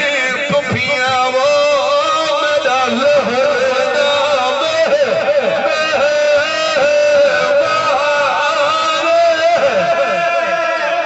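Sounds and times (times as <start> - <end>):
man chanting into a microphone: 0.0 - 11.0.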